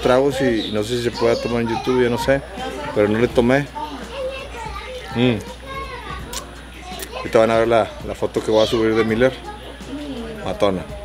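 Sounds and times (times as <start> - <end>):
children's voices at play: 0.0 - 11.0.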